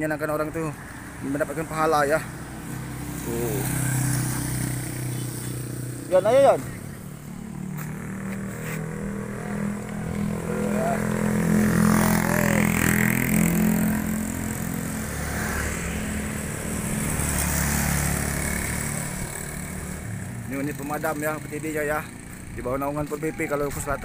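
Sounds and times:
motor scooters passing: 0.0 - 24.0
vehicle engine running: 1.2 - 15.0.

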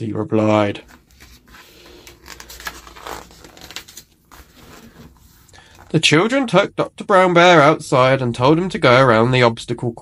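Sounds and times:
book page turning: 0.8 - 6.0
paper rustling: 0.8 - 6.0.

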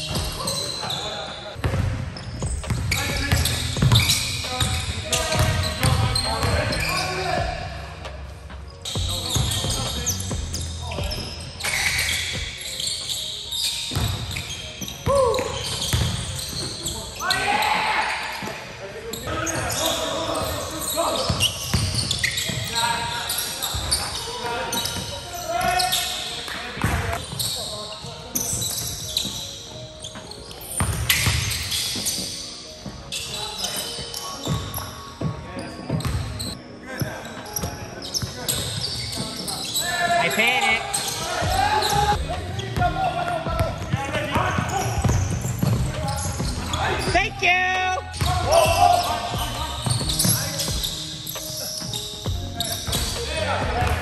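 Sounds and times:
sneakers squeaking: 0.0 - 54.0
basketballs bouncing on wooden floor: 1.6 - 7.6, 13.9 - 16.9, 21.3 - 22.8, 30.8 - 33.1, 34.5 - 36.6, 41.1 - 47.4, 48.2 - 51.0, 51.8 - 54.0
players calling out: 38.8 - 54.0.

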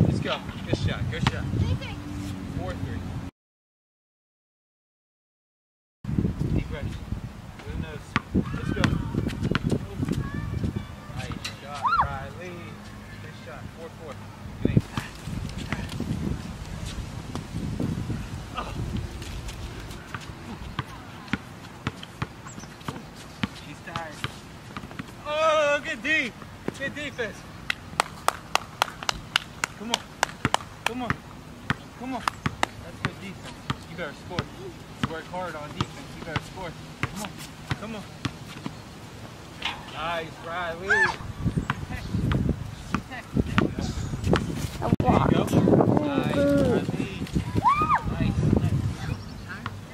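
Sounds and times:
sneaker steps: 18.9 - 25.2
basketball bouncing on hard court: 34.4 - 38.8.

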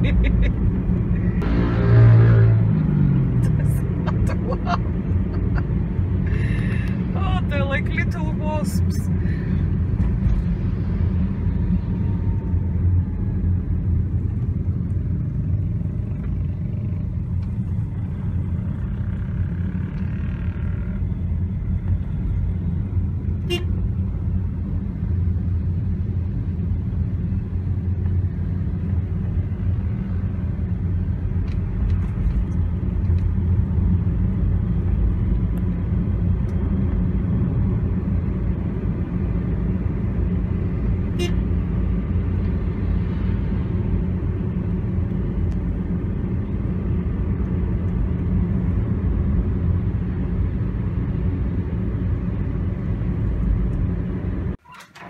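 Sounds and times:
car interior rumble in traffic: 0.0 - 55.0
car horn toot: 23.4 - 23.8, 41.2 - 41.4.

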